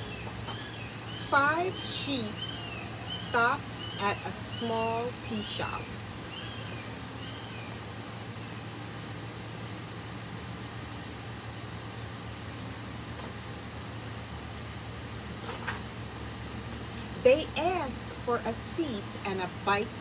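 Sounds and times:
constant low hum: 0.0s - 20.0s.

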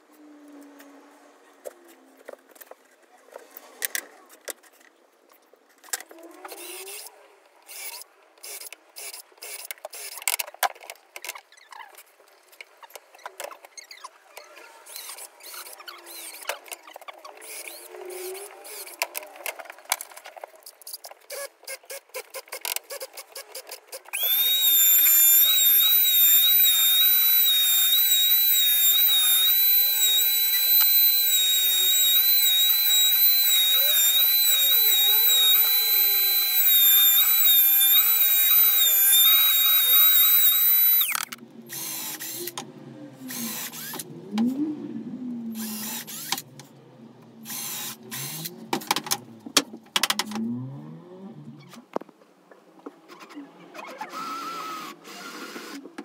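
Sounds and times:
router whining through wood: 6.4s - 7.1s, 7.7s - 10.1s, 14.9s - 16.5s, 17.4s - 19.5s, 24.1s - 44.9s, 45.5s - 46.5s, 47.4s - 49.2s, 53.9s - 55.9s
clicking and knocking: 48.7s - 50.4s.

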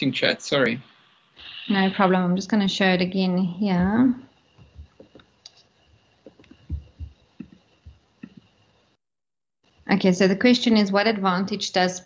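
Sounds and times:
faint steady high hum: 0.0s - 9.0s
person speaking: 1.4s - 4.2s.

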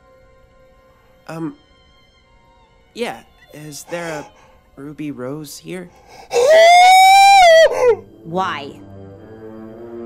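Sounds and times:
man squealing in falsetto: 6.3s - 8.0s.

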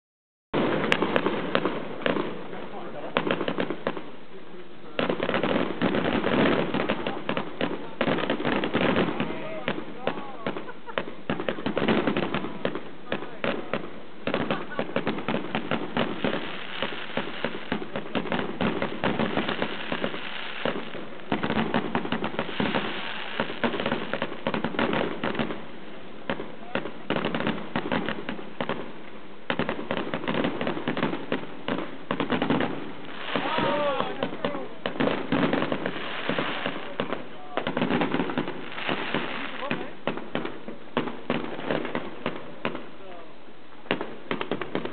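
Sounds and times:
firecrackers crackling: 0.6s - 44.9s
fireworks rockets bursting: 0.6s - 44.9s.

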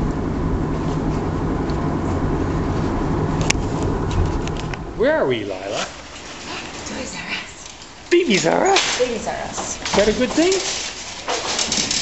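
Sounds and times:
car cabin road and engine noise: 0.0s - 6.2s.

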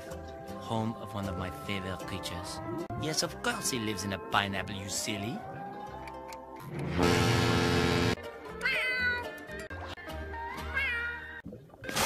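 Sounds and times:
background music: 0.0s - 12.0s
cartoon meows: 8.6s - 9.3s, 10.5s - 11.4s.

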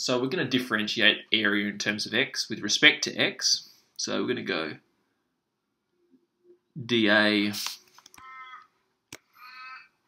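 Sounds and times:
crow cawing: 8.2s - 8.7s, 9.4s - 9.9s.

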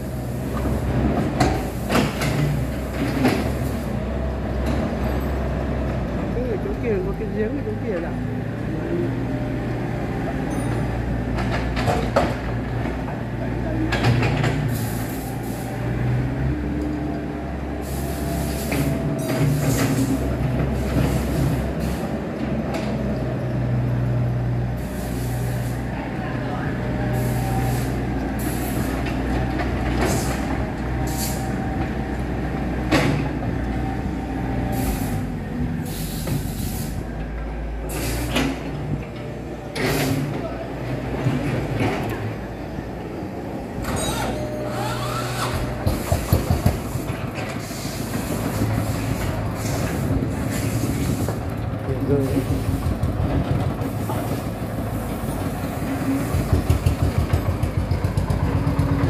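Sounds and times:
excavator diesel engine running: 0.0s - 59.0s.

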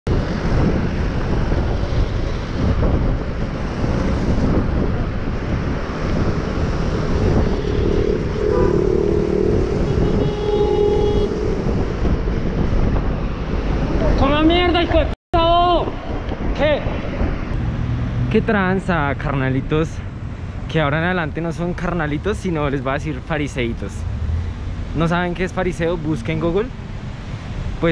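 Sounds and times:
cars and buses passing: 0.1s - 15.1s, 15.8s - 27.9s
wind buffeting microphone: 0.1s - 19.4s
brief steady tones: 7.2s - 12.4s.

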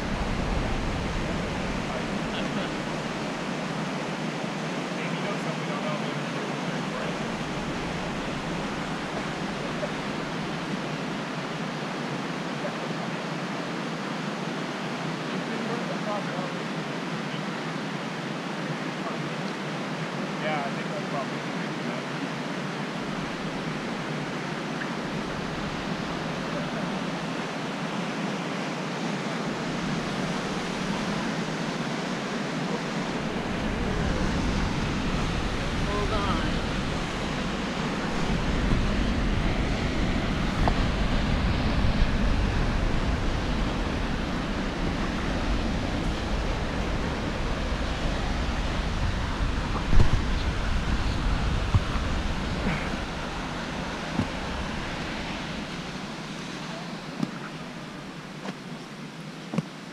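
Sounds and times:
wind buffeting microphone: 0.0s - 3.7s, 29.4s - 58.2s
white water rushing: 0.0s - 59.9s.

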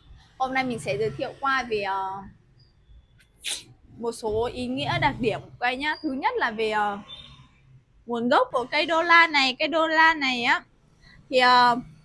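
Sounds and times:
woman speaking: 0.4s - 2.3s, 3.9s - 7.1s, 8.1s - 10.7s, 11.3s - 11.9s
mouth click: 3.2s - 3.7s.

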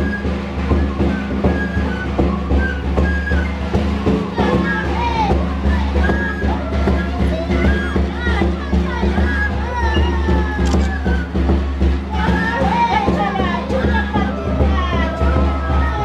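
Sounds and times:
group singing in high voices: 12.1s - 16.0s.

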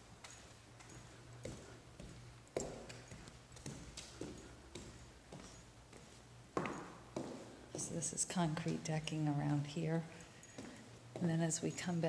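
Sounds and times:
footsteps on floor: 0.2s - 9.7s, 10.4s - 12.0s.

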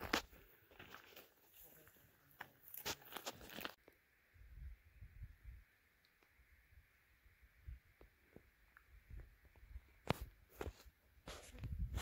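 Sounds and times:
footsteps on stony ground: 0.0s - 3.8s.

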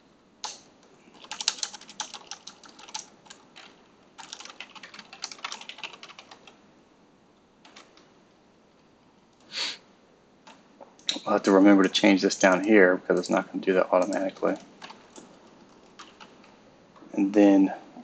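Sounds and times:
keyboard typing: 0.4s - 6.6s, 7.6s - 8.1s, 14.0s - 16.5s.

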